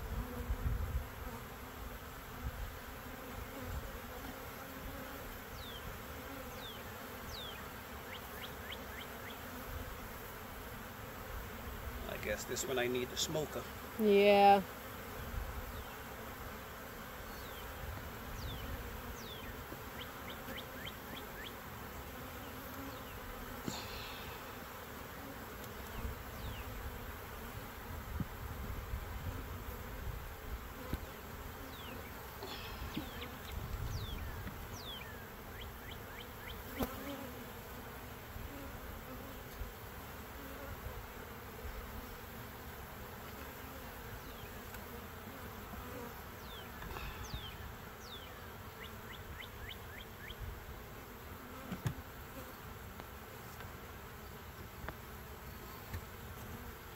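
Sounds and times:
honeybees buzzing: 0:00.0 - 0:56.9
knocks of wooden hive parts: 0:51.7 - 0:52.0.

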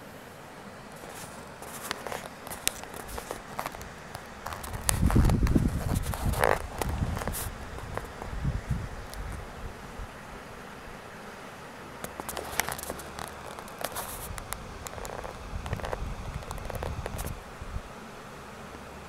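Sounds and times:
camera handling rustle: 0:01.0 - 0:08.4, 0:12.0 - 0:17.4
low rumble and scraping: 0:04.4 - 0:09.4.

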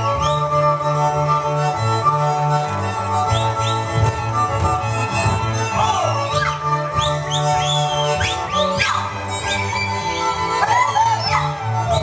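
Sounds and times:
folk string band music: 0:00.0 - 0:12.0.

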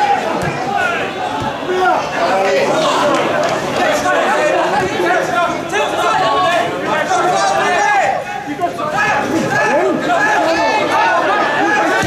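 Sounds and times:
people calling and shouting: 0:00.0 - 0:12.0.

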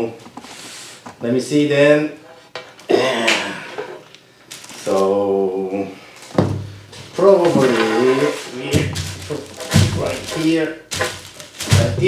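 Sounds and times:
man humming: 0:02.9 - 0:03.8
plastic parts knocking on table: 0:08.7 - 0:12.0.

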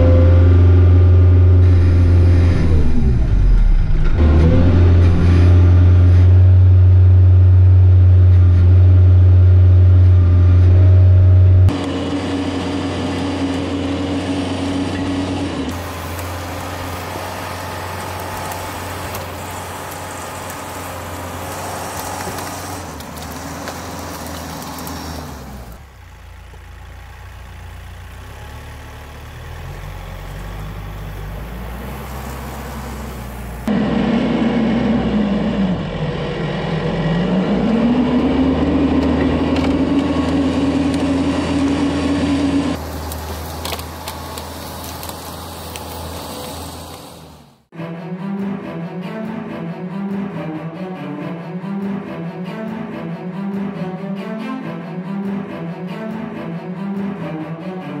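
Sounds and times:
tractor diesel engine under load: 0:00.0 - 0:47.7.

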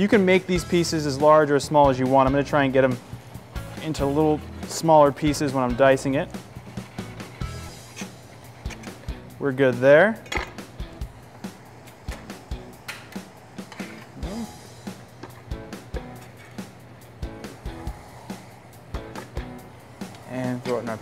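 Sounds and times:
light background music: 0:00.0 - 0:21.0.

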